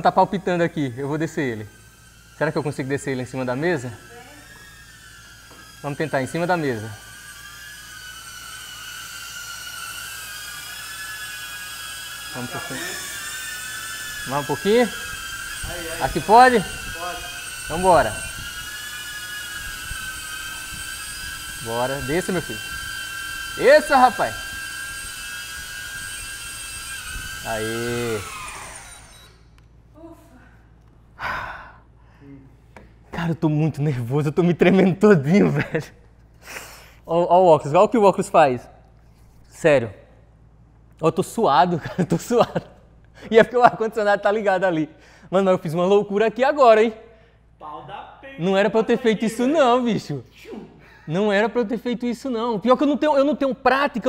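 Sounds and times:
drone propellers whining: 0.0s - 29.7s
man breathing heavily: 31.2s - 32.5s.

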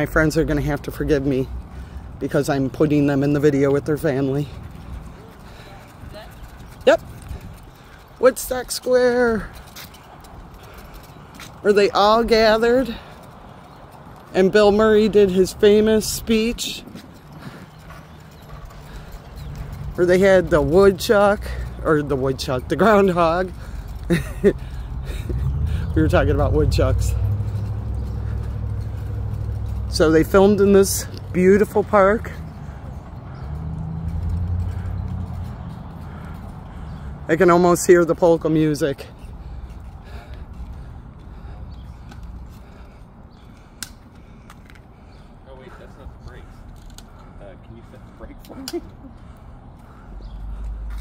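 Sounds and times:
footsteps on brick pavement: 0.0s - 51.0s.

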